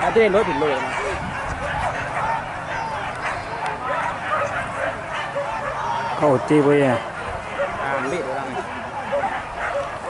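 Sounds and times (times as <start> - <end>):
dogs yelping and barking: 0.0 - 10.0
drawn-out dog cry: 0.0 - 10.0.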